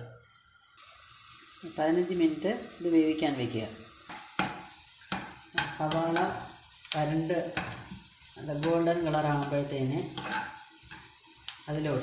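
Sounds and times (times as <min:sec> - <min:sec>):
spatula striking frying pan: 0:04.0 - 0:11.6.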